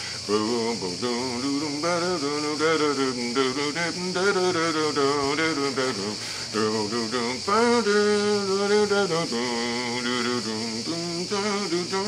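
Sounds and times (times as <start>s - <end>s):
high insect chirring: 0.0s - 12.0s
man singing without words: 0.0s - 12.0s.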